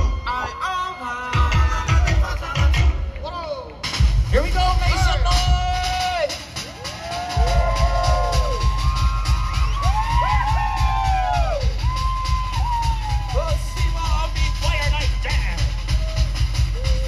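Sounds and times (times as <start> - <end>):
people whooping and yelling: 0.0 - 2.2, 5.0 - 17.0
drum-driven music: 1.3 - 17.0.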